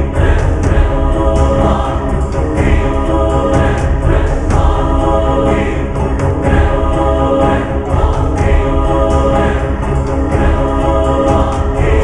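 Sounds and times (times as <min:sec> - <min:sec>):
choir-like voices: 0:00.0 - 0:12.0
deep low drone: 0:00.0 - 0:12.0.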